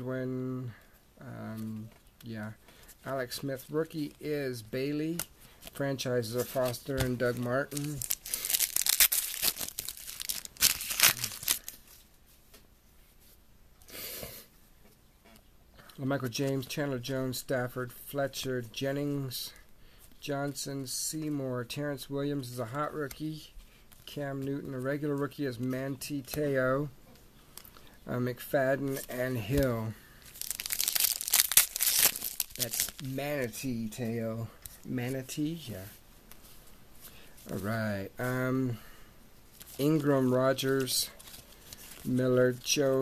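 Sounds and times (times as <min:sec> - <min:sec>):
foil wrapper tearing and crinkling: 0:06.6 - 0:11.8, 0:30.3 - 0:33.1.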